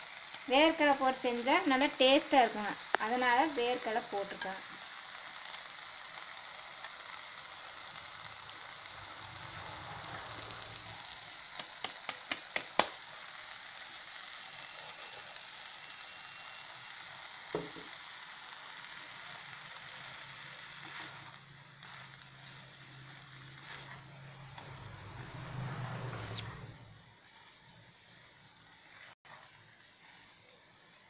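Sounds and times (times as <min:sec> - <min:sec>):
beans sizzling in oil: 0:00.0 - 0:31.0.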